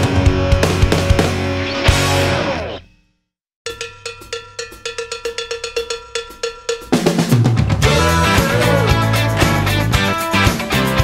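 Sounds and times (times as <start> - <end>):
pitched percussion hits: 3.7 - 11.0.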